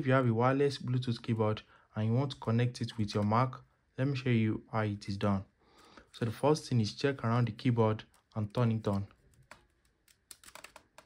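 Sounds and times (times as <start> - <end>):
keyboard keys clicking and rattling: 8.6 - 11.0.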